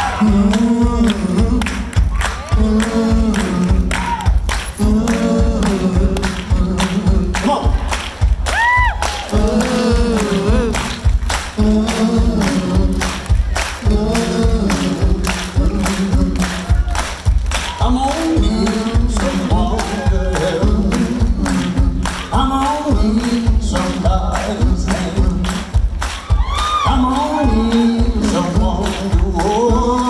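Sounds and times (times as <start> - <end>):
people singing along: 0.0 - 7.7, 9.2 - 25.6, 26.4 - 30.0
hand-clapping beat: 0.0 - 30.0
high whistle or whoop: 8.5 - 9.1, 26.2 - 27.9.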